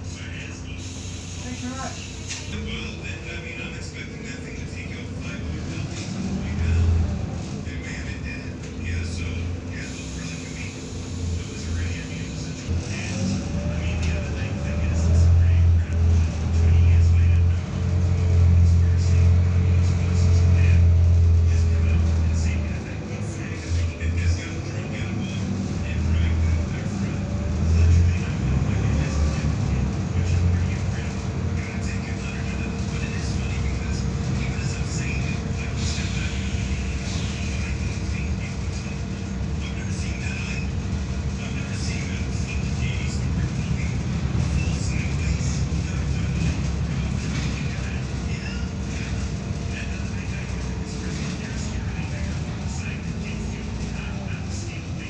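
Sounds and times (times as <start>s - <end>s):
bus diesel engine droning: 0.0s - 55.0s
engine whine: 0.0s - 55.0s.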